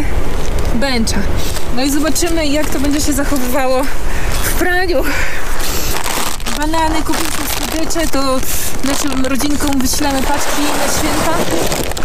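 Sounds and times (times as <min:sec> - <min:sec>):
woman's voice: 0:00.7 - 0:05.3, 0:06.5 - 0:11.8
plastic packaging rustling: 0:01.4 - 0:04.5, 0:05.4 - 0:12.0.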